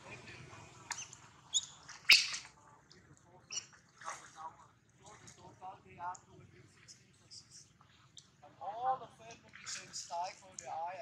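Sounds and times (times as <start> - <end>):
monkey squeaks and chirps: 0.9 - 2.5.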